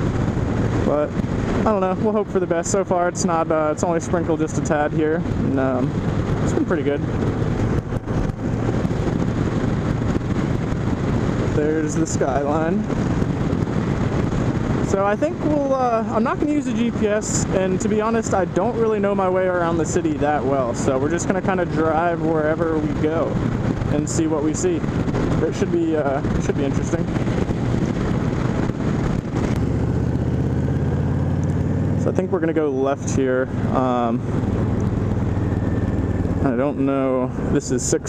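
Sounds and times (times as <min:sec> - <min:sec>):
motorcycle engine: 0:00.0 - 0:38.0
wind on microphone: 0:00.0 - 0:38.0.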